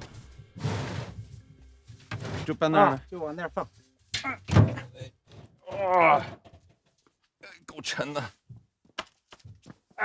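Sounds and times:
man's voice: 0:07.4 - 0:08.4.

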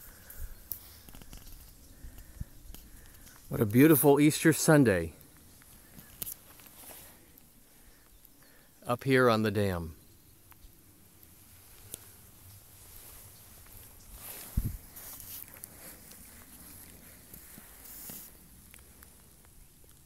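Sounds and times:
footsteps in long grass: 0:05.3 - 0:07.3, 0:11.4 - 0:19.2.

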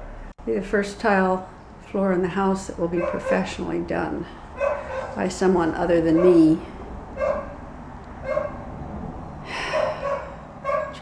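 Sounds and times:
dog barking: 0:03.0 - 0:03.6, 0:04.6 - 0:05.2, 0:06.1 - 0:06.6, 0:07.2 - 0:07.6, 0:08.2 - 0:08.6, 0:09.7 - 0:11.0.

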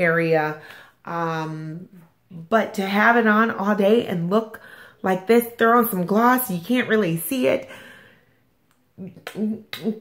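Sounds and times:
woman talking: 0:00.0 - 0:08.0, 0:08.9 - 0:10.0.

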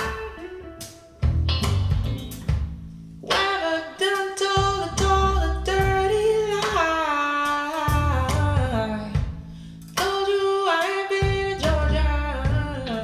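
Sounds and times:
guitar and bass: 0:00.0 - 0:10.1, 0:11.2 - 0:13.0.

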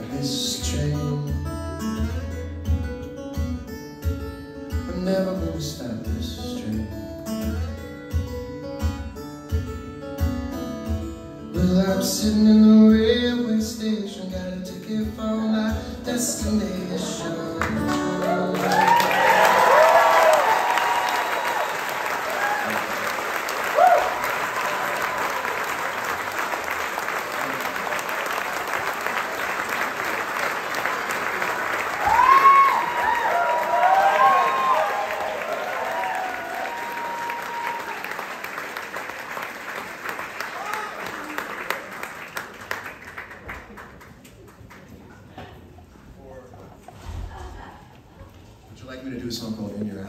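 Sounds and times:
audience applauding: 0:17.6 - 0:45.5
shouts and whoops: 0:18.2 - 0:23.0, 0:23.7 - 0:25.6, 0:32.0 - 0:38.2, 0:40.5 - 0:41.4.

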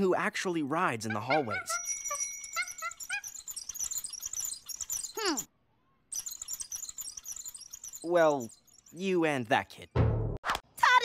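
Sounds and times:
cartoon monkey chattering: 0:00.8 - 0:05.5, 0:06.1 - 0:09.2.

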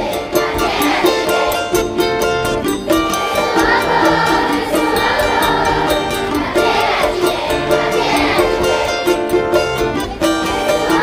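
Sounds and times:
acoustic guitar and plucked strings: 0:00.0 - 0:11.0
percussion beat: 0:00.0 - 0:11.0.

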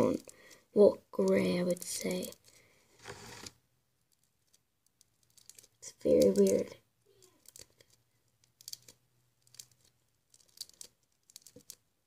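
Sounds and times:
slime clicking and crackling: 0:01.2 - 0:02.5, 0:04.1 - 0:11.9.

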